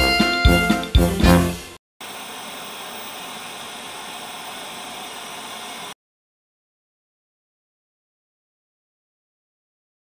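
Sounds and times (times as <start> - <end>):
white noise hiss: 1.4 - 6.0.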